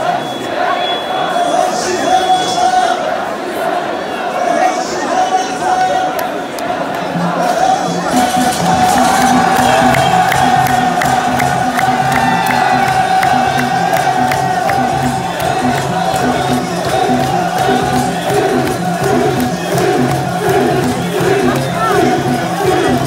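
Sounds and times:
large crowd cheering: 0.0 - 23.0
loud music with drumbeat: 7.4 - 23.0.

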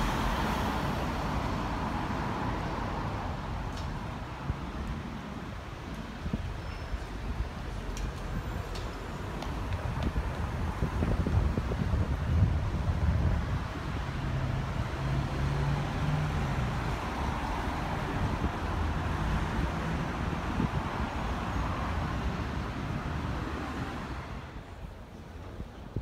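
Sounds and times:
road traffic engine hum: 0.0 - 26.0
wind buffeting microphone: 2.4 - 26.0.

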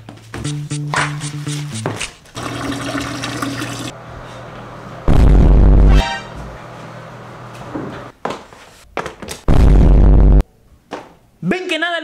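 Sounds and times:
bass-heavy sound effect: 5.1 - 6.3, 9.5 - 10.4.

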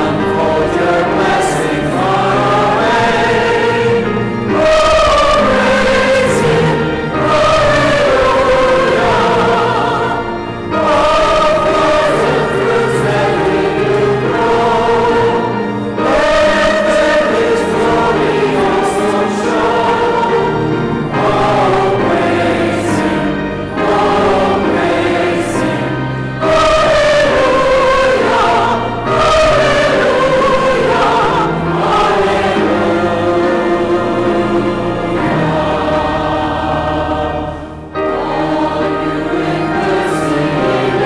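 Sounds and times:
choir singing: 0.0 - 41.0.

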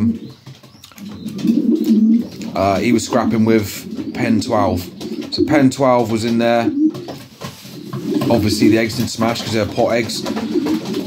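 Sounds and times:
pigeon cooing: 0.0 - 11.0.

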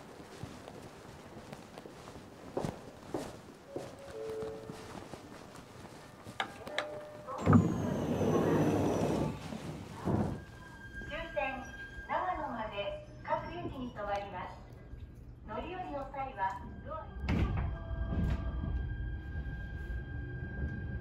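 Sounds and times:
footsteps on stairs: 0.0 - 7.0.

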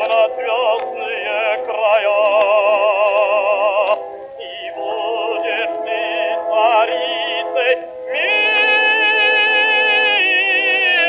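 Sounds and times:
musical accompaniment: 0.0 - 11.0
operatic baritone singing: 0.0 - 11.0.

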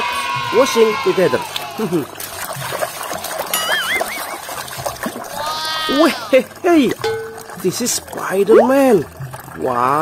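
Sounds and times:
water splashing: 0.6 - 10.0
hand scrubbing toy in water: 1.5 - 9.0.

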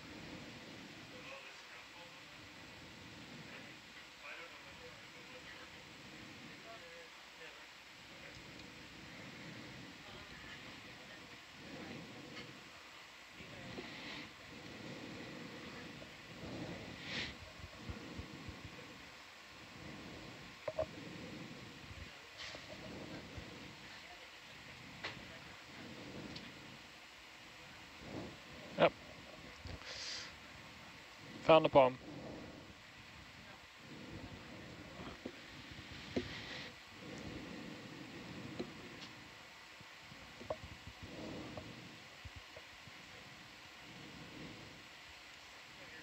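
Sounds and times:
low hum and hiss: 0.0 - 46.0
muffled indistinct voices: 0.1 - 26.9, 27.5 - 39.2, 45.4 - 46.0.

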